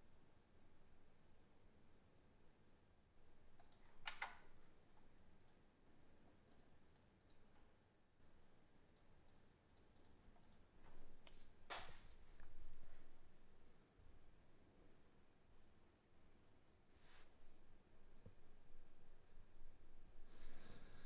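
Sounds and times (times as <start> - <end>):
keyboard and mouse clicks: 3.5 - 4.4, 5.4 - 5.6, 6.4 - 7.6, 8.9 - 12.0.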